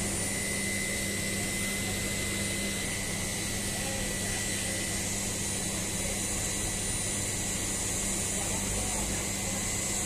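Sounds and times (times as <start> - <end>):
machinery hum: 0.0 - 10.0.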